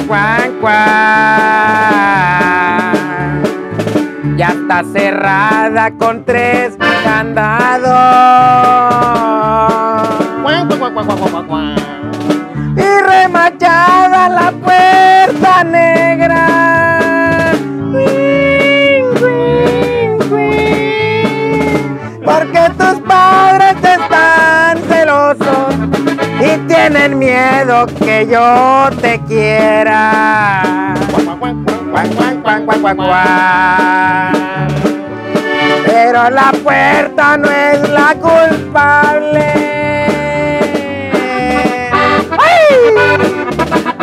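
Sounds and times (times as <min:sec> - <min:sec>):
accordion band playing: 0:00.0 - 0:44.0
drum kit beat: 0:00.0 - 0:44.0
electric bass: 0:00.0 - 0:44.0
twelve-string guitar: 0:00.0 - 0:44.0.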